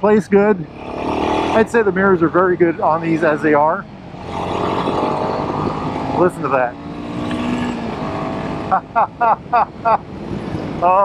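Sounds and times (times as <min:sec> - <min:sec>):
man laughing: 0:08.6 - 0:10.1.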